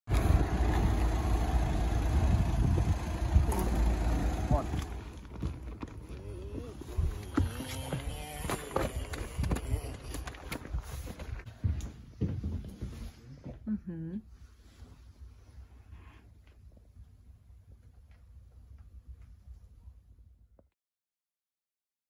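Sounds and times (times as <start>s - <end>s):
low vehicle rumble: 0.1s - 11.5s.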